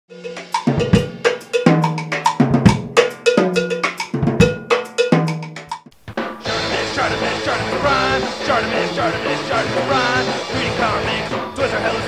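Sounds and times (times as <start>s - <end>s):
cowbell-like percussion hits: 0.1s - 8.6s
drum kit beat: 0.1s - 12.0s.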